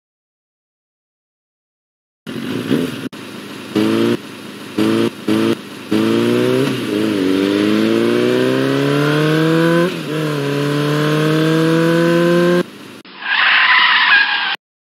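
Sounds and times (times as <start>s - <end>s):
car engine revving: 2.3s - 13.0s.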